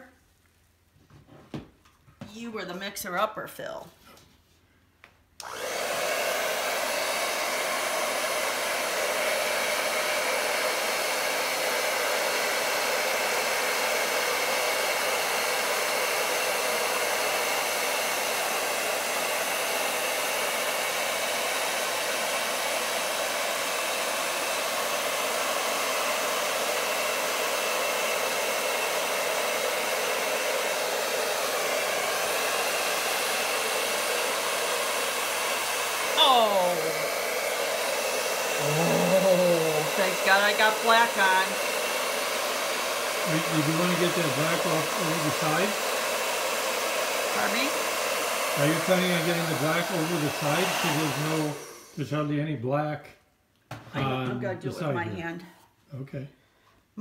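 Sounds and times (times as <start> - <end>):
hair dryer running: 5.4 - 52.4, 53.7 - 55.3.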